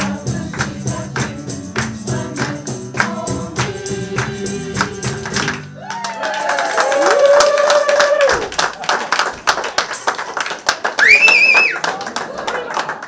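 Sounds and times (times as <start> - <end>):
tambourine: 0.0 - 5.2
choir singing: 0.0 - 5.6
hand-clapping: 0.0 - 13.0
applause: 4.8 - 13.0
whooping cheers: 5.8 - 8.6, 11.0 - 13.0.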